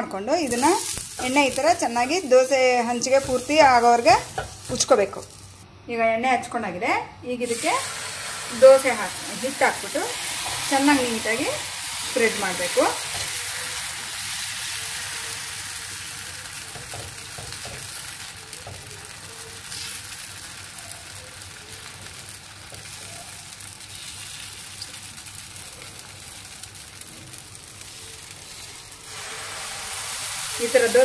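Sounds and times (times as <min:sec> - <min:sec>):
batter sizzling on a hot griddle: 0:00.3 - 0:05.6, 0:07.4 - 0:31.0.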